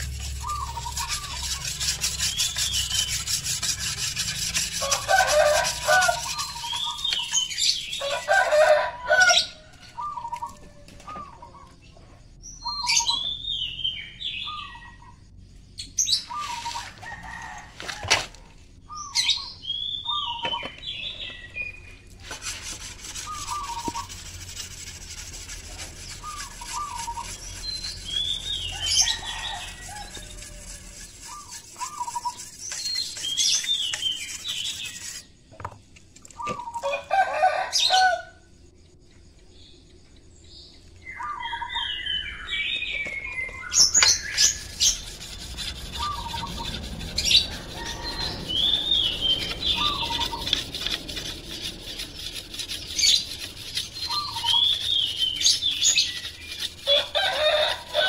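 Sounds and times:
birds chirping: 0.0 - 4.0, 4.8 - 17.6, 18.8 - 22.3, 23.2 - 24.2, 25.7 - 35.7, 38.8 - 58.0
blade rubbed on sharpening stone: 0.0 - 8.3, 22.2 - 35.3, 44.0 - 58.0.

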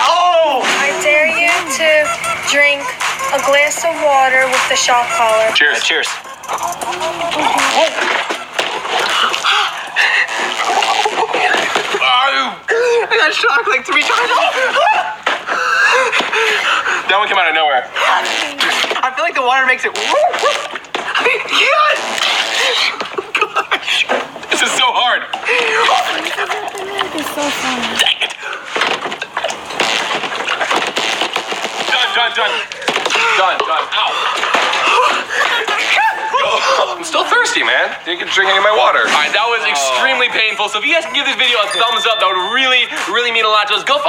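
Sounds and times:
water splashing: 0.0 - 17.2, 17.9 - 44.0
people gulping and sputtering water: 0.0 - 44.0
spitting: 6.1 - 13.0, 13.9 - 17.1, 18.0 - 19.1, 19.9 - 24.6, 25.3 - 33.4
young man yelping and spluttering: 6.4 - 16.9, 25.3 - 28.7, 31.8 - 37.6
gasps: 6.6 - 11.8.

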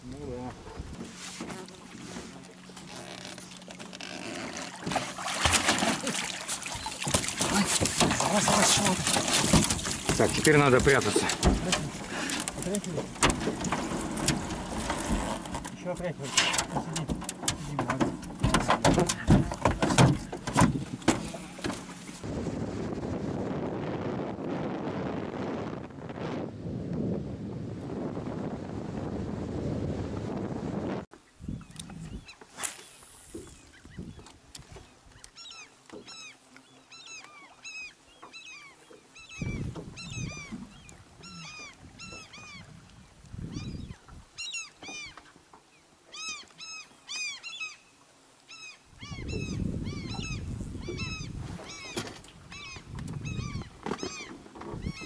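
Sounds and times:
motorboat wind and water rush: 0.0 - 47.4, 48.0 - 55.0
birds calling: 5.7 - 22.1, 31.2 - 55.0.

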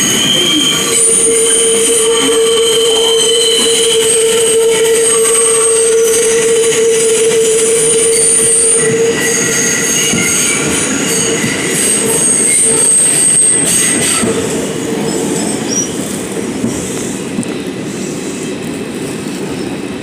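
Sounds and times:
high-pitched wheel squeal: 0.0 - 14.4
subway train rumbling: 0.0 - 20.0.

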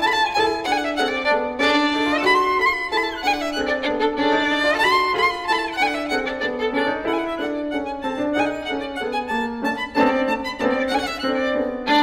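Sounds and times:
grand piano: 0.0 - 12.0
violin bowing quick notes: 0.0 - 12.0.

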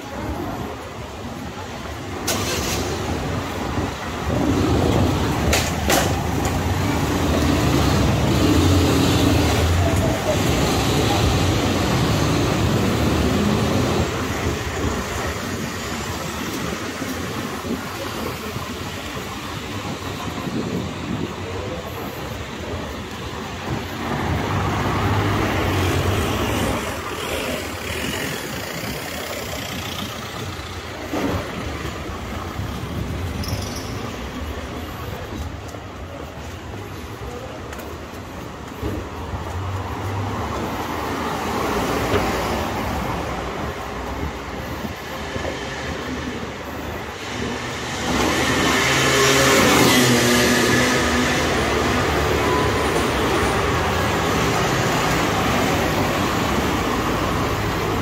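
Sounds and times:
cars driving by: 0.0 - 58.0.

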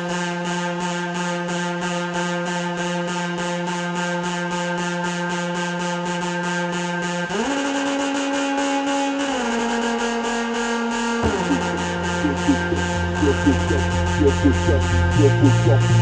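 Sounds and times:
pulsing bass: 11.0 - 16.0
held synth tone sliding in pitch: 11.2 - 15.9.

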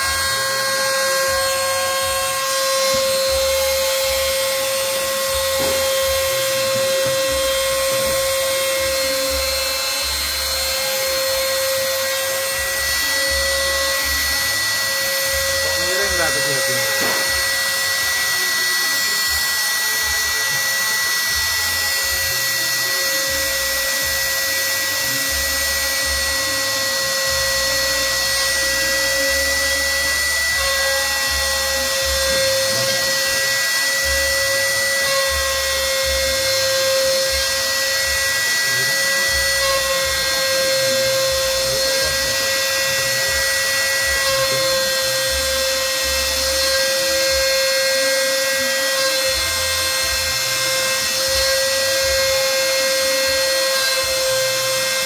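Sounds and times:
rising and falling tone: 0.0 - 53.8
router spindle high whine: 0.0 - 55.0
wood cutting noise: 0.0 - 55.0.

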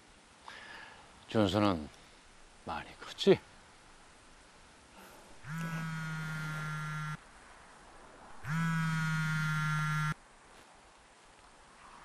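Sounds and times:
mobile phone buzzing ring: 5.4 - 7.2, 8.4 - 10.2.

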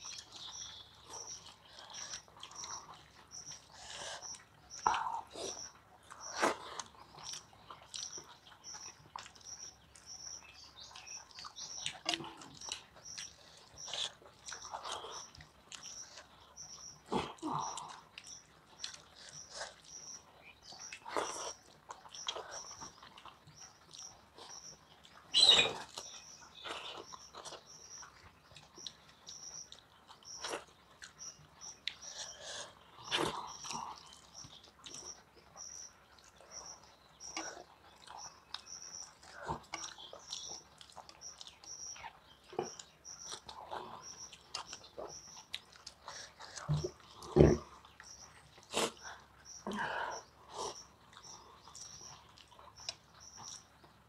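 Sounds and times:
chewing and wet mouth sounds: 0.0 - 54.0
faint high chirp: 22.1 - 53.7.

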